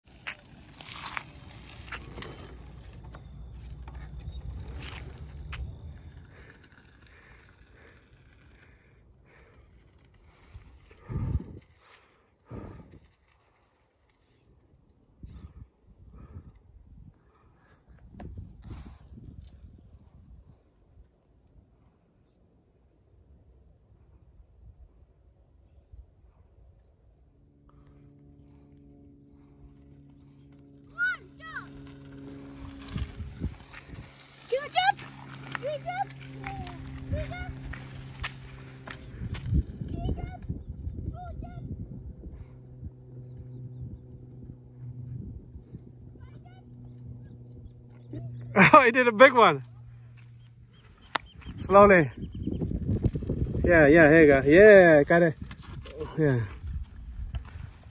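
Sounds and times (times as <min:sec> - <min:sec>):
bike rattling over dirt trail: 0:00.0 - 0:15.5, 0:29.0 - 0:41.6, 0:42.6 - 0:57.9
steady pitched buzz: 0:27.2 - 0:55.3.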